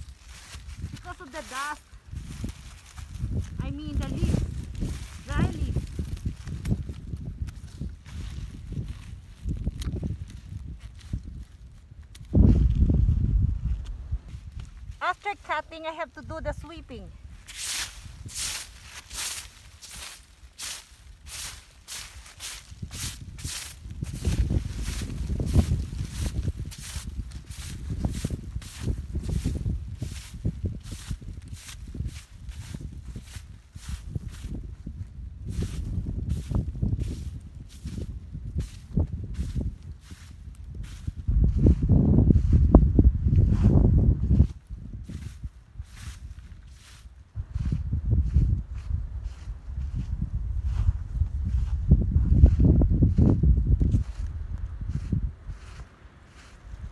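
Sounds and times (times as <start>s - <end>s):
broom sweeping leaves: 17.3s - 34.5s, 45.1s - 47.1s.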